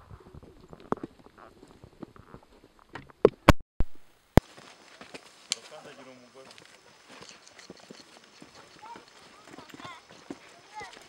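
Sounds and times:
footsteps on dirt path: 0:04.4 - 0:11.0.

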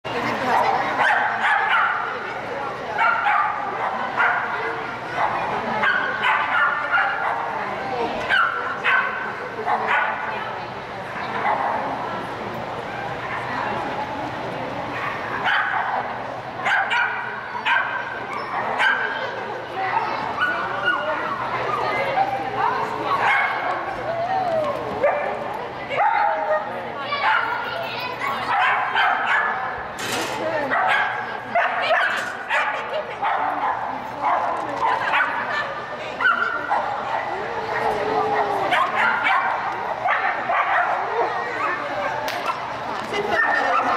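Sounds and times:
dog barking and yipping: 0:16.7 - 0:19.1, 0:28.2 - 0:29.6, 0:30.7 - 0:35.5, 0:38.7 - 0:41.0.

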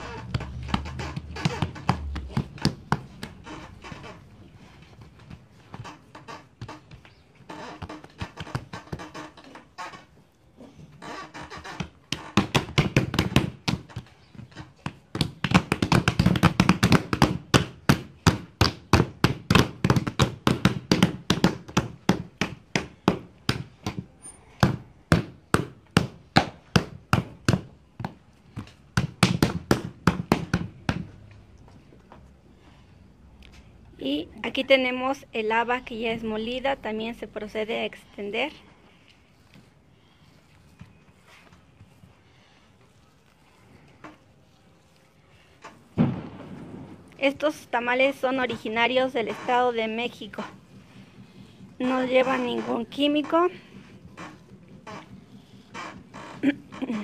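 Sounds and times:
hands slapping dough: 0:11.8 - 0:31.4.

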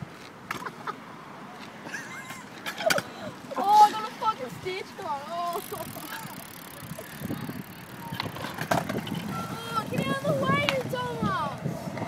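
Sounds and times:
small wheels rolling on concrete: 0:01.5 - 0:12.0.

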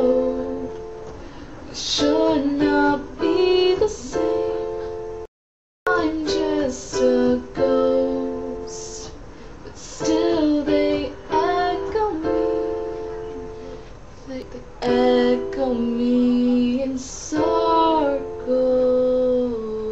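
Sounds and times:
electronic piano chords: 0:00.0 - 0:05.3, 0:05.9 - 0:19.9.

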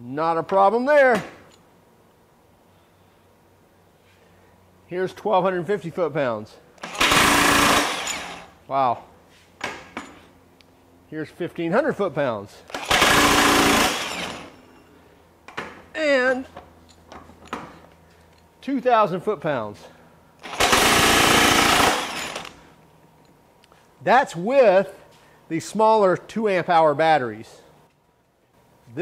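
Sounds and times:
impact wrench hammering: 0:06.8 - 0:08.5, 0:20.4 - 0:22.5.

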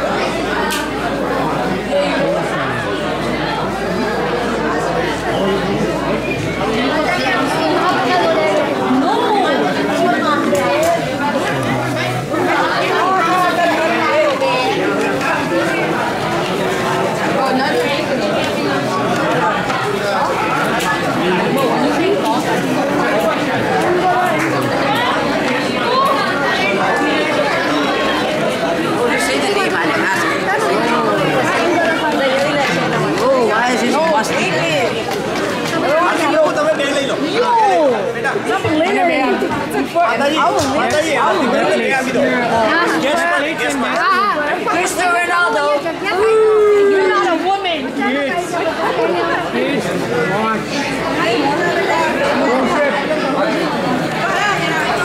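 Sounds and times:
overlapping chatter of voices: 0:00.0 - 0:55.0.

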